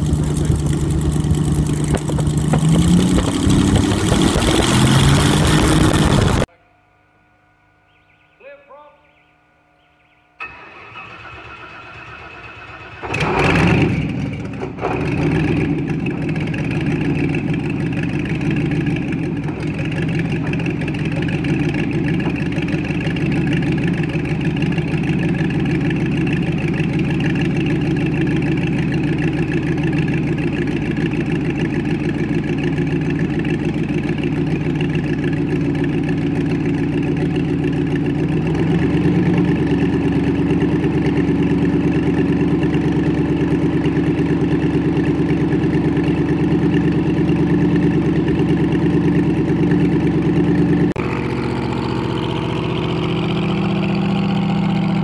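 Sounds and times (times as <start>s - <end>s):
piston engine starting and idling: 0.0s - 6.5s, 10.4s - 55.0s.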